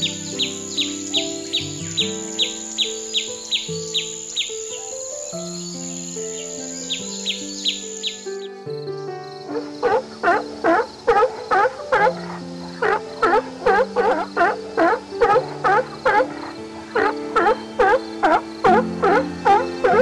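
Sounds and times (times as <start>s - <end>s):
deeper repeated bird calls: 0.0s - 4.8s, 5.4s - 8.5s, 9.5s - 20.0s
swallow chicks chirping: 0.0s - 8.5s, 9.8s - 20.0s
slow background music: 0.0s - 20.0s.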